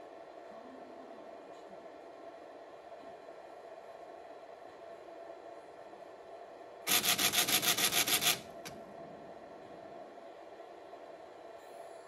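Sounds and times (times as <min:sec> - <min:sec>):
pachinko machine rattle: 0:06.9 - 0:08.7.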